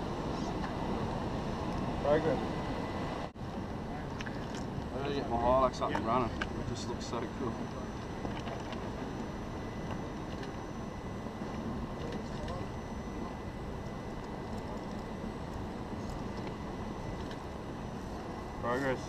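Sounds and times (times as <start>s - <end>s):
faint voices: 11.4s - 16.8s.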